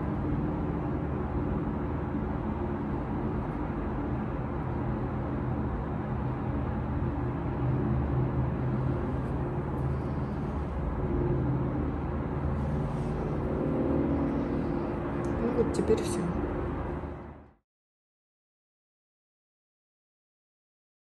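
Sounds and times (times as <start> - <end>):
steady low hum: 0.0 - 17.6.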